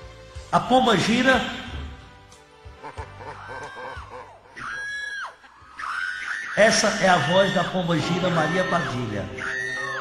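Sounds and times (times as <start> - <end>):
shrill high-pitched cries: 3.2 - 10.0.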